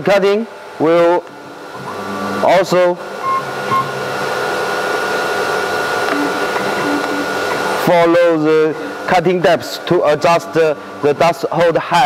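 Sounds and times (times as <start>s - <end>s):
router spindle whining hum: 0.6s - 11.8s.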